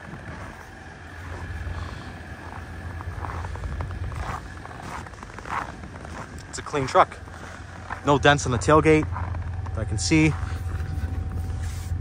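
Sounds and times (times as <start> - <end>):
footsteps crunching on snow: 0.0 - 12.0
steady low rumble: 0.0 - 12.0.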